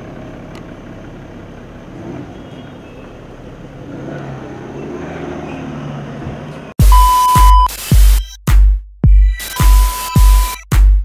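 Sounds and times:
car engine running: 0.0s - 4.4s
street traffic noise: 0.0s - 7.7s
steady beep tone: 6.8s - 8.4s, 9.4s - 10.6s
electronic music with bass hits: 6.8s - 11.0s.

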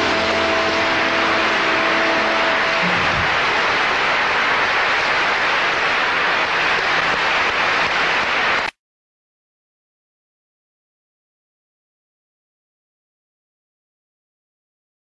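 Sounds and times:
held notes of a song: 0.0s - 3.8s
loud steady static hiss: 0.0s - 8.8s.

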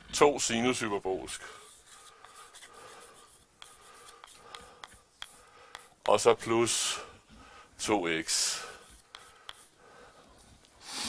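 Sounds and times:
chalk scratching on blackboard: 1.3s - 7.0s, 8.2s - 9.8s
chalk tapping on board: 1.7s - 6.5s, 8.3s - 9.8s.

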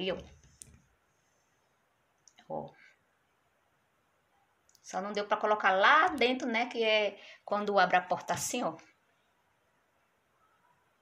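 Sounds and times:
woman speaking: 0.0s - 0.4s, 2.4s - 2.9s, 4.8s - 9.0s.

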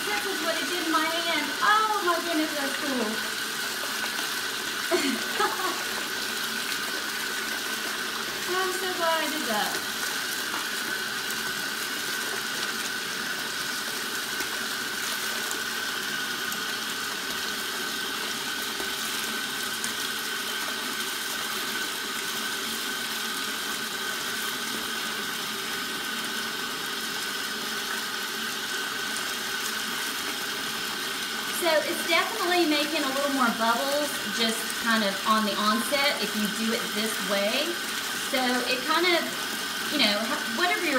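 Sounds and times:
faucet pouring into filling tub: 0.0s - 40.9s.

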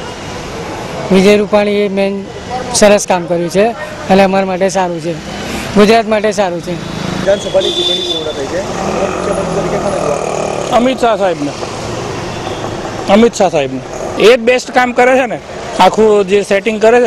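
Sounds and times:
road traffic: 0.0s - 17.0s
man speaking: 1.1s - 11.6s, 13.1s - 17.0s.

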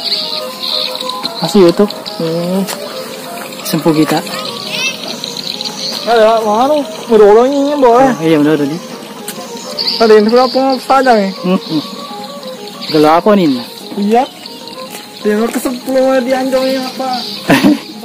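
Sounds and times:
person singing with music: 0.0s - 8.2s.

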